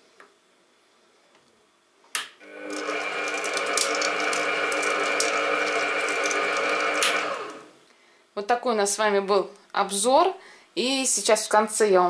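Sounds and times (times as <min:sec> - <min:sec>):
stand mixer motor whining: 0:02.4 - 0:07.7.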